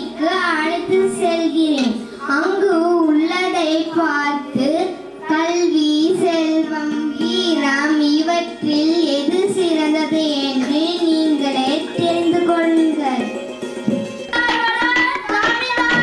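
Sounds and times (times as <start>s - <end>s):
girl singing into microphone: 0.0s - 13.3s, 14.3s - 16.0s.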